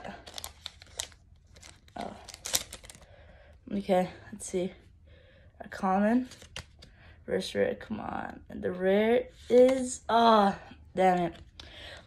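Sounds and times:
foil wrapper crinkling: 0.0 - 3.0
cards crackling: 0.1 - 3.1, 6.3 - 6.9.

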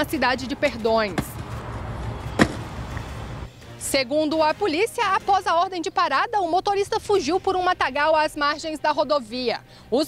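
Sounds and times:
road traffic rumble: 0.0 - 3.8
sharp knock: 2.4 - 2.7.

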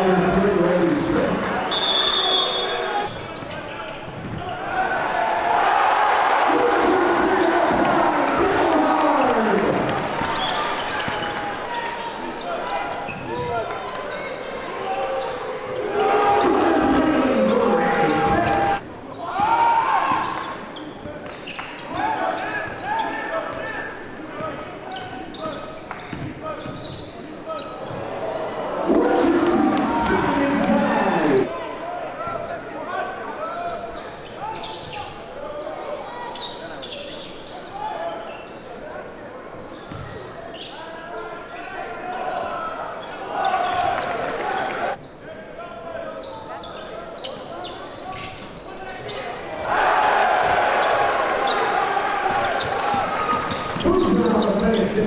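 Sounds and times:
crowd noise: 0.0 - 55.0.

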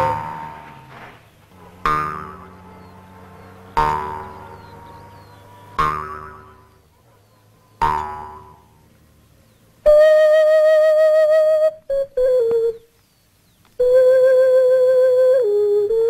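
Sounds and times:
jaw harp twanging: 0.0 - 6.9, 7.8 - 8.8.

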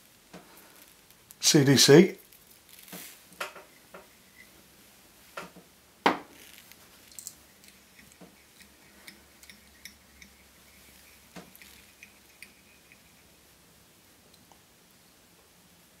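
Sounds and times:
small tools clicking and tapping: 7.1 - 13.1.

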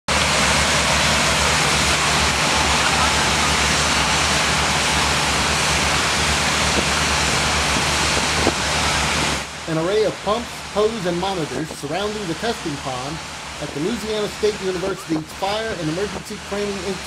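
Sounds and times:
low hum: 0.1 - 17.0
water rushing from fire pumps: 0.1 - 17.0.

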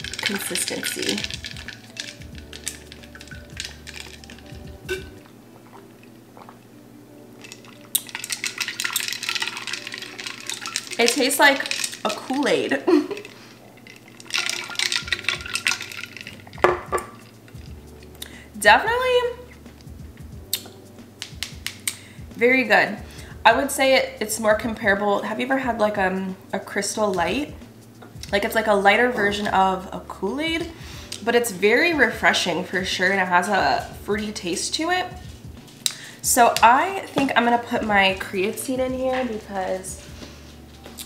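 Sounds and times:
ice cubes clinking in glass jar: 0.0 - 5.1, 7.4 - 17.3.

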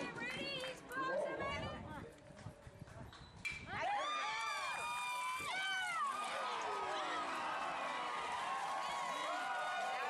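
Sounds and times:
crowd shouting and cheering: 3.7 - 10.0.

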